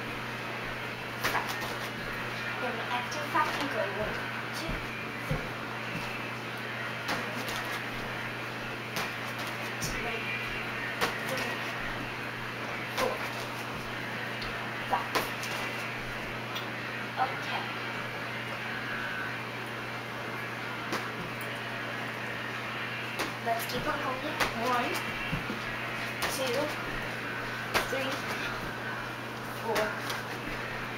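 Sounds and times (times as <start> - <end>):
steady low hum: 0.0 - 30.9
feet thumping on exercise step: 4.6 - 6.1.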